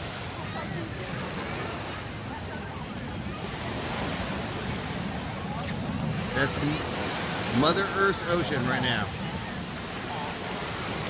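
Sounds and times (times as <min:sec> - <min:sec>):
small waves breaking on sand: 0:00.0 - 0:11.0.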